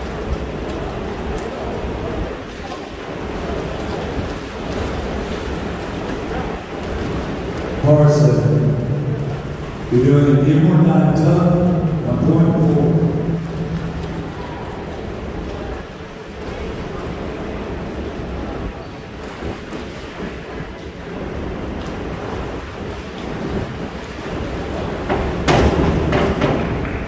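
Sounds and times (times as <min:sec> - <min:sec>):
diver splash: 0:00.0 - 0:17.6
swimmers splashing: 0:00.0 - 0:27.0.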